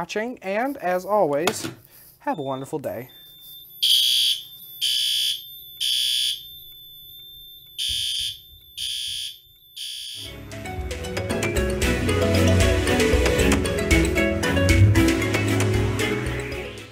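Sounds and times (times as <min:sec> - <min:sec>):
fire alarm horn blasts: 0:03.4 - 0:10.3
music: 0:10.3 - 0:16.9.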